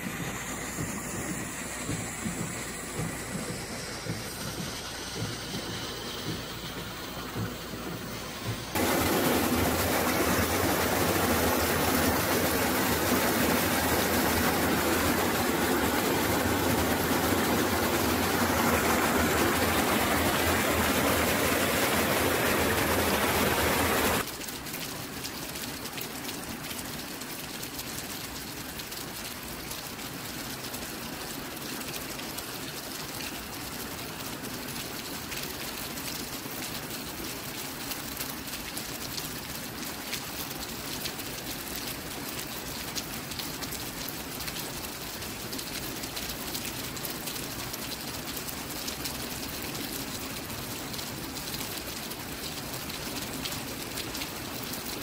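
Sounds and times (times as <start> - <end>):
steady rain falling: 0.0 - 55.0.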